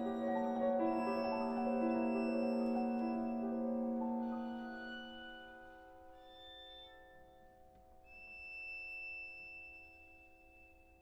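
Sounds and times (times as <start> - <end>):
soft violin and piano music: 0.0 - 11.0.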